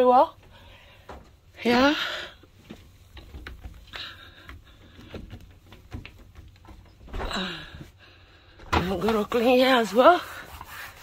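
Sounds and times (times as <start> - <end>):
small clicks and rustles: 2.4 - 7.2.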